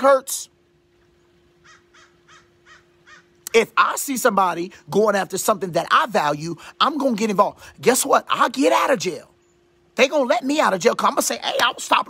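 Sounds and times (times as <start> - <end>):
distant bird calls: 0.9 - 3.5, 9.2 - 10.0.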